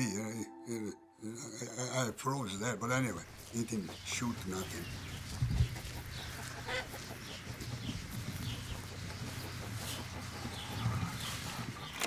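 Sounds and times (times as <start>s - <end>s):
chickens clucking: 2.4s - 12.0s.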